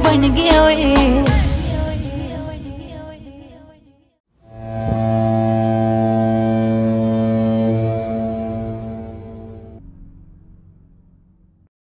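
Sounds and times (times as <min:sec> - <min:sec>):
deep droning tone: 0:04.4 - 0:11.7.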